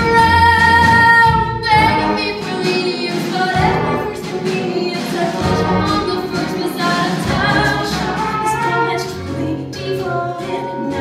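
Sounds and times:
musical accompaniment: 0:00.0 - 0:11.0
woman singing show tune: 0:00.0 - 0:11.0.

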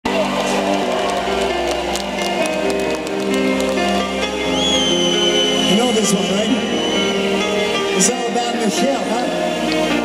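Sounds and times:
live pop band music: 0:00.1 - 0:10.0.

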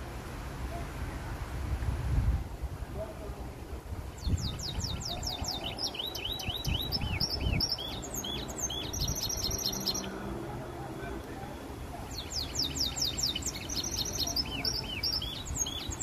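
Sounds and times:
canary singing: 0:04.2 - 0:10.4, 0:11.9 - 0:16.0.

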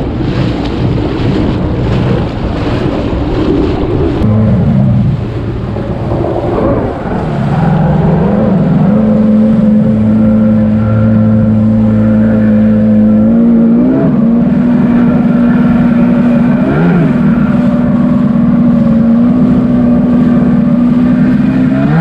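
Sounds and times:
jet ski engine running: 0:00.0 - 0:22.0
rushing water: 0:00.0 - 0:22.0.

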